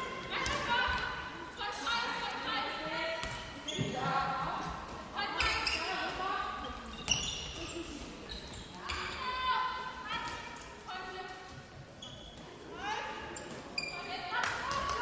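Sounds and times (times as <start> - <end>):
shoes squeaking on floor: 3.6 - 4.2, 5.4 - 9.4, 11.9 - 12.6, 13.2 - 14.2.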